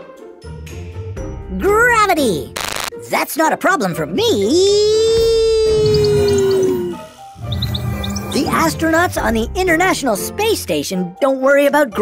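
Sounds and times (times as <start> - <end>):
background music: 0.0 - 12.0
sliding electronic tone: 2.6 - 2.9.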